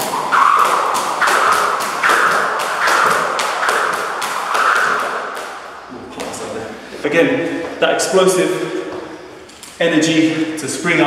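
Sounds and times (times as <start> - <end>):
jump rope slapping floor mat: 0.0 - 6.4
rope whooshing: 0.0 - 6.4
feet landing: 0.0 - 6.5.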